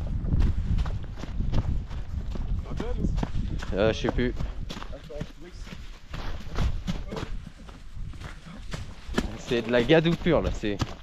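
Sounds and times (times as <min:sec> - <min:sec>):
footsteps on muddy dirt trail: 0:00.0 - 0:11.0.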